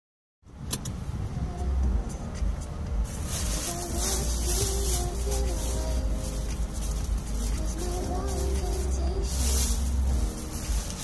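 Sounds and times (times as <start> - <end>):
car cabin rumble: 0.5 - 11.0
plastic bag rustling: 3.1 - 11.0.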